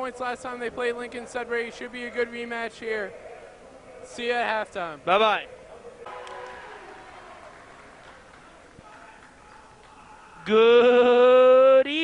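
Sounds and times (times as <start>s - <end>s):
faint crowd murmur: 0.0s - 10.5s.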